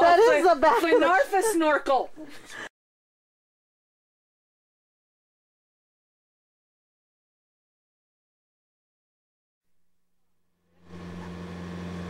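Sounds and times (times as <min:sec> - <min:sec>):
boat engine hum: 0:10.8 - 0:12.0.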